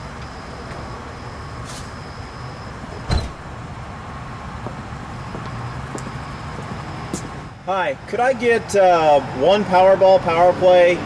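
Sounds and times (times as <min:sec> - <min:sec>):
traffic rumble: 0:00.0 - 0:11.0
car door shutting: 0:03.0 - 0:03.6.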